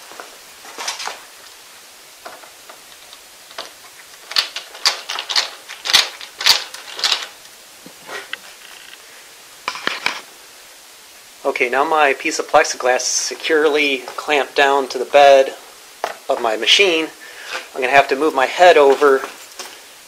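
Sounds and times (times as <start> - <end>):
metal clamps clicking and clinking: 4.3 - 7.3.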